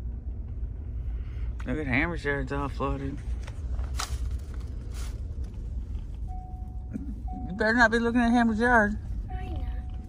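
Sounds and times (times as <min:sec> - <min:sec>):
truck engine rumble from inside: 0:00.0 - 0:10.0.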